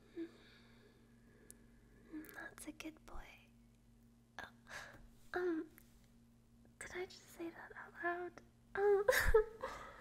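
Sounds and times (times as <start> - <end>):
low steady hum: 0.0 - 10.0
woman whispering: 2.1 - 3.6, 4.4 - 4.7, 6.8 - 8.4.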